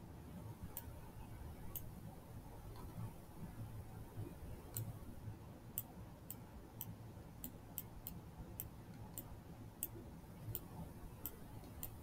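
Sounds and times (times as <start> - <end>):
faint computer mouse clicks: 1.7 - 1.9, 4.7 - 5.0, 5.8 - 12.0.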